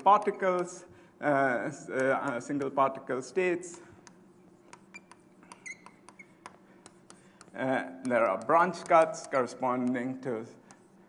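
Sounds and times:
chalk tapping on blackboard: 0.0s - 0.9s, 1.9s - 3.0s, 3.6s - 11.0s
faint room hum: 0.0s - 11.0s
chalk squeak: 4.3s - 6.5s.

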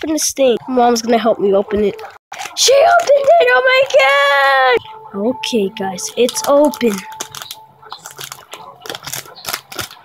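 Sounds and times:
plastic wrapping crinkling: 6.1s - 10.0s.

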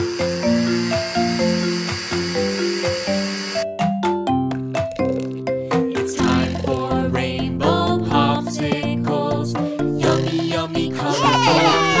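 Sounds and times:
blender whirring: 0.0s - 3.7s
bouncy children's song: 5.7s - 12.0s.

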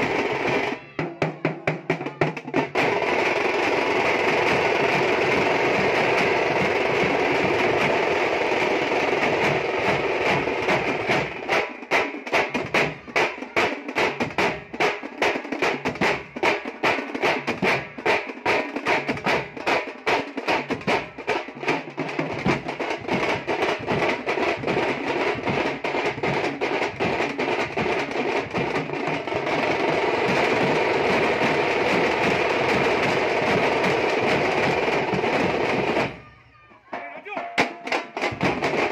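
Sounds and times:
frame drums and barrel drums: 0.0s - 38.9s.

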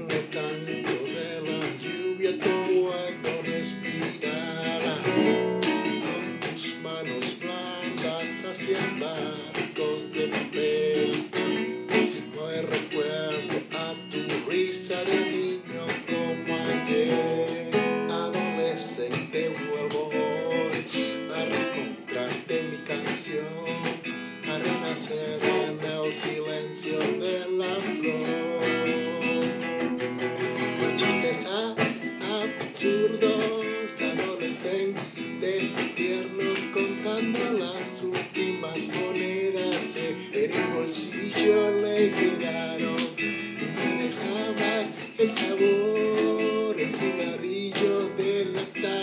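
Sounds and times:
acoustic guitar strumming: 0.0s - 49.0s.

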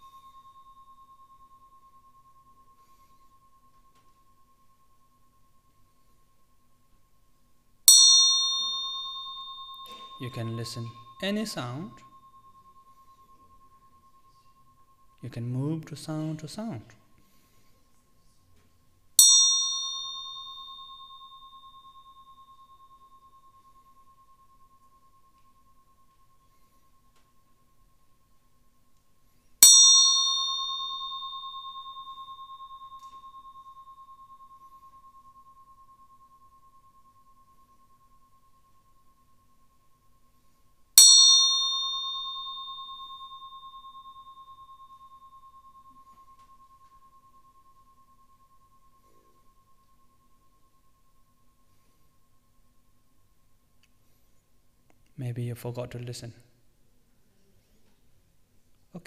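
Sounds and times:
meditation bell ringing: 0.0s - 55.0s.

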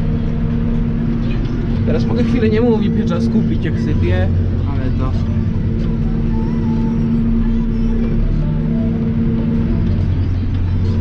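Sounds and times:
tractor engine drone: 0.0s - 11.0s.

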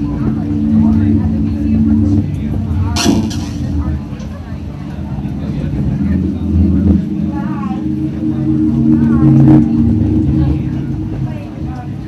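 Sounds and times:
loud low drone: 0.0s - 12.0s
people talking: 0.0s - 12.0s.

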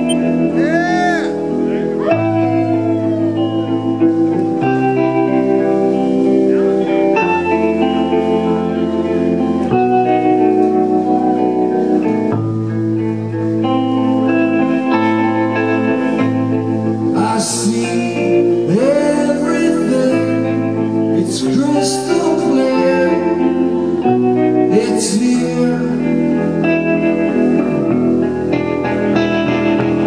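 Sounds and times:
electric guitar chords: 0.0s - 30.0s.

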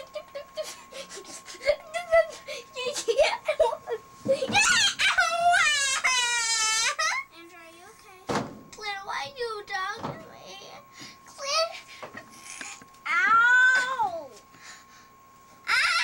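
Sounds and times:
boy high-pitched cry: 4.3s - 7.3s, 13.1s - 14.1s, 15.6s - 16.0s
child yelping: 4.3s - 7.3s, 13.1s - 14.2s, 15.6s - 16.0s
child squealing: 4.4s - 7.2s, 15.6s - 16.0s.

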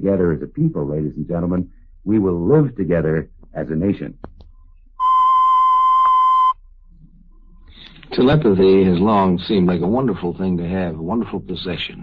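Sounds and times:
high-pitched electronic beep: 5.0s - 6.6s.

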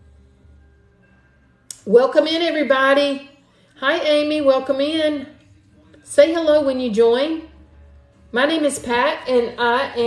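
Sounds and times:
woman speaking: 1.7s - 5.4s, 8.4s - 10.0s.

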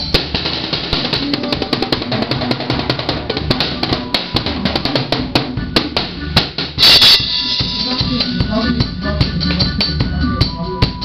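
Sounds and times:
pitched band instruments: 0.0s - 11.0s
rapid drum and cymbal hits: 0.0s - 11.0s.

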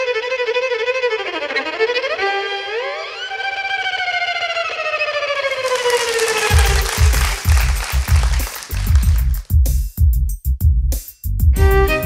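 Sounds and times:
violin sliding long note: 1.1s - 6.8s
backing track with low beat: 6.5s - 12.0s.

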